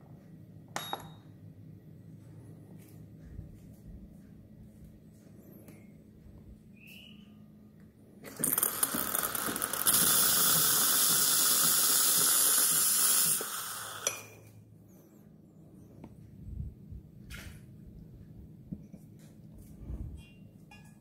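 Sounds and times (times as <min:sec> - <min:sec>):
steam wand sputtering and hissing: 0:08.3 - 0:14.4.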